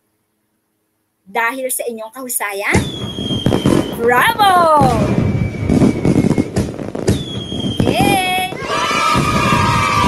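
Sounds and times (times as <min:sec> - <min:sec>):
fireworks crackling and banging: 0:02.7 - 0:10.0
high steady whistle: 0:02.8 - 0:04.2, 0:05.0 - 0:08.3.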